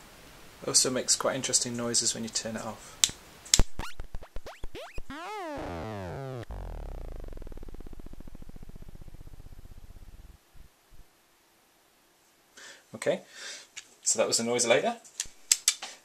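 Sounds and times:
noise synth clicks and squeals: 0:03.5 - 0:11.1
synth buzz falling in pitch: 0:03.6 - 0:11.1.

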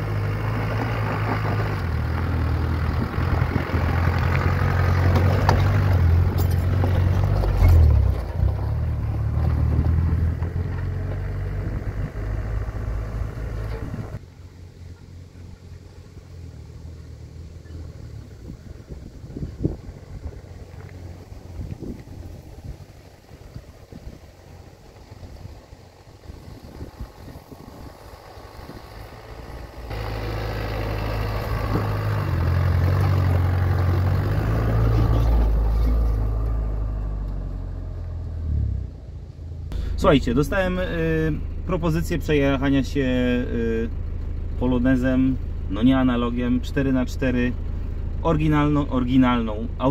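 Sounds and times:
pickup engine driving on gravel: 0:00.0 - 0:49.9.

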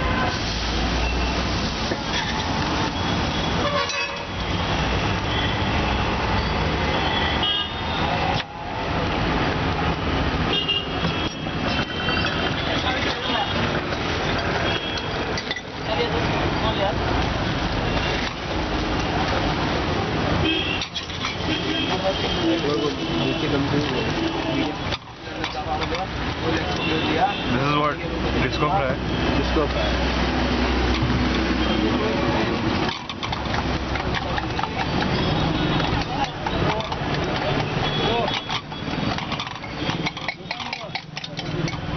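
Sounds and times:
traffic noise: 0:00.0 - 0:41.9
vehicle horns tooting: 0:02.9 - 0:08.2, 0:10.5 - 0:13.7, 0:14.4 - 0:15.4, 0:20.4 - 0:25.0, 0:26.5 - 0:28.0, 0:34.3 - 0:41.0
people talking: 0:12.4 - 0:13.8, 0:21.7 - 0:30.0, 0:34.0 - 0:38.6.

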